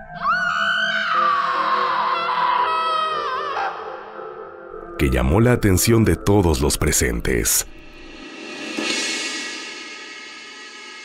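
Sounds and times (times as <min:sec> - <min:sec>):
woman screaming: 0:00.0 - 0:04.1
background music: 0:00.0 - 0:11.0.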